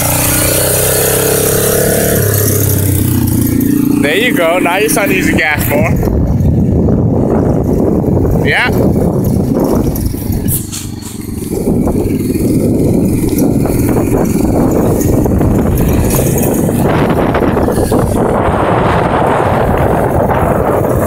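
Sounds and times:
quad bike engine under throttle: 0.0s - 21.0s.

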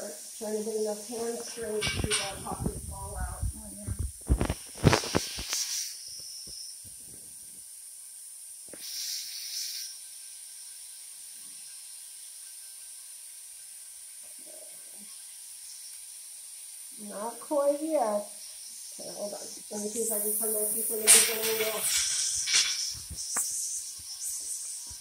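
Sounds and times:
steady background hiss: 0.0s - 25.0s
short airy hiss: 4.2s - 7.0s, 8.6s - 10.0s, 20.0s - 25.0s.

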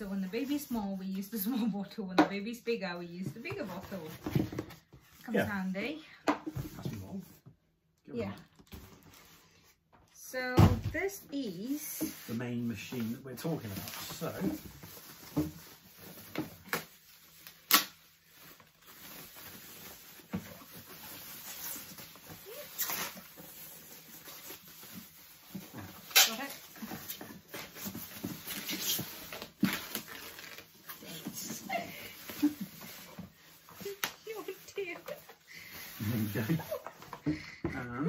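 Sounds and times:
plastic bag rustling: 12.2s - 37.3s.

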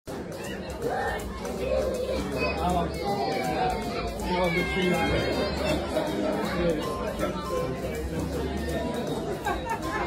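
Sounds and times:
people chattering: 0.1s - 10.0s.

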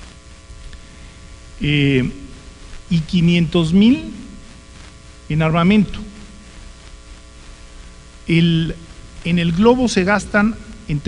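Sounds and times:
electrical mains hum: 0.0s - 11.0s
faint microphone hiss: 0.0s - 11.0s.

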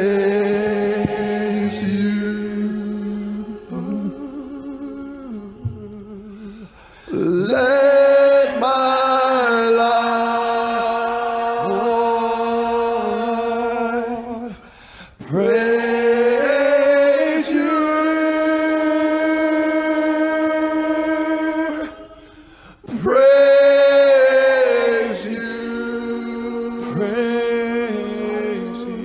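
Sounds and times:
men singing worship chorus: 0.0s - 29.0s.

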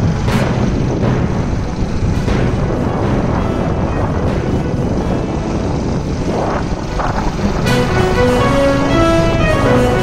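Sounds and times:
music with held string notes: 0.0s - 10.0s
steady low rumbling: 0.0s - 10.0s.

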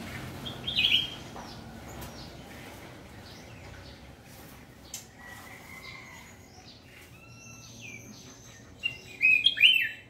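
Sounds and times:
bird chirping and warbling: 0.0s - 10.0s.

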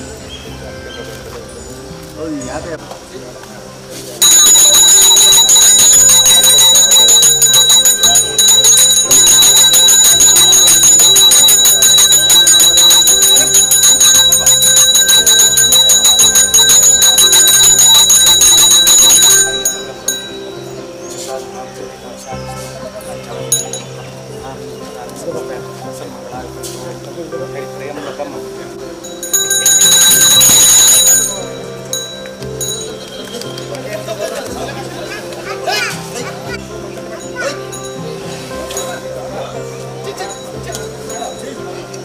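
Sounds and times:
stepping melody: 4.0s - 27.8s, 28.4s - 42.0s
hand bell ringing rapidly: 4.2s - 20.5s, 29.0s - 33.0s.

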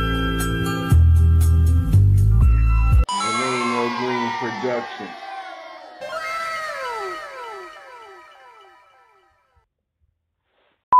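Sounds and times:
music: 0.0s - 3.6s, 6.2s - 9.5s
falling tone with echoes: 3.1s - 9.5s.

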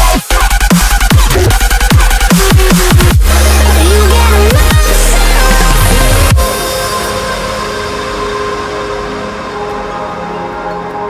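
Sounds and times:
held synth chord: 3.2s - 11.0s.

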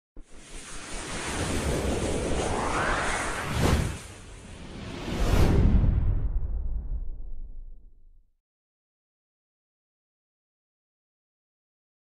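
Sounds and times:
wind-like noise swell: 0.2s - 7.7s
low rumble: 1.5s - 8.3s.

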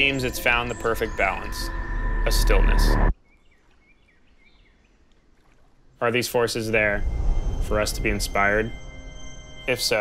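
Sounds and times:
soft repeated chirp: 0.0s - 4.8s, 7.0s - 10.0s
faint outdoor ambience: 0.0s - 10.0s
background music: 6.7s - 10.0s.

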